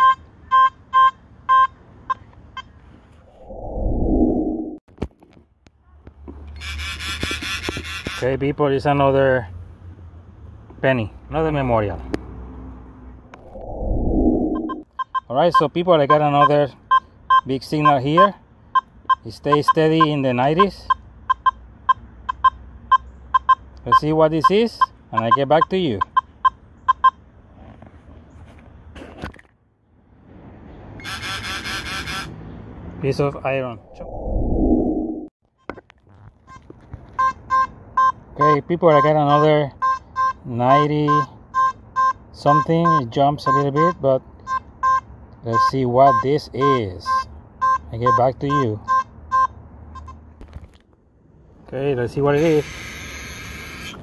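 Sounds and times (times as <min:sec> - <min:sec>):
low rumbling background: 0:03.2 - 0:04.8, 0:12.8 - 0:14.9, 0:33.6 - 0:35.3
whoosh transition effect: 0:03.2 - 0:04.8, 0:13.4 - 0:14.8, 0:33.7 - 0:35.3
metal detector beeping: 0:14.4 - 0:27.2, 0:31.0 - 0:32.3, 0:37.2 - 0:50.2, 0:52.4 - 0:54.0.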